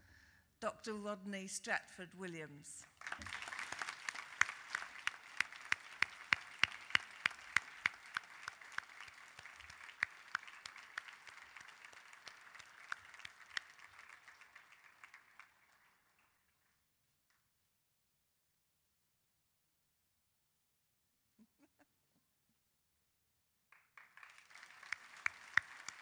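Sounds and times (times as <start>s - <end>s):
loud even hand claps: 2.8s - 16.7s, 23.7s - 26.0s
audience applauding: 2.9s - 16.6s, 23.7s - 26.0s.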